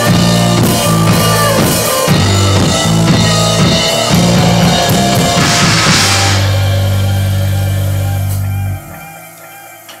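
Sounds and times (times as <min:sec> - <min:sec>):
held bass and guitar chord: 0:00.0 - 0:09.1.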